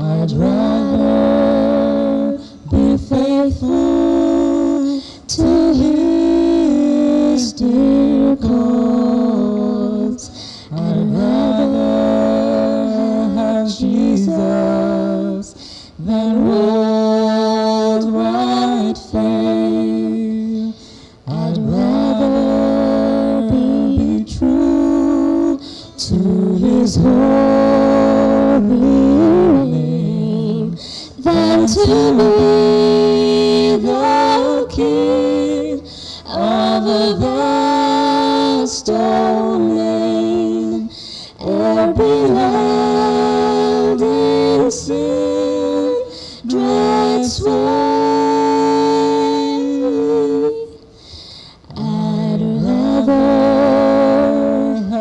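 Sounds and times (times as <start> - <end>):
people singing: 0.0 - 50.9, 51.7 - 55.0.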